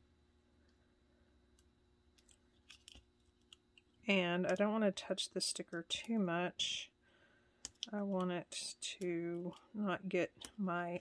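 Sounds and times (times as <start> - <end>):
small paper ticks and clicks: 2.2 - 3.9.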